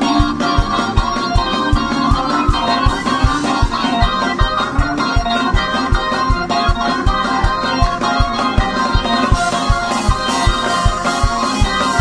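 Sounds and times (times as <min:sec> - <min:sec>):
bass drum beat: 0:00.0 - 0:12.0
drum kit: 0:00.0 - 0:12.0
organ chords: 0:00.0 - 0:12.0.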